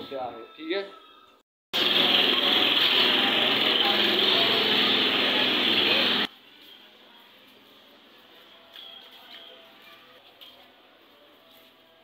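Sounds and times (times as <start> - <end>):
small motorcycle engine running: 1.8 - 6.3
street voices: 1.8 - 12.0.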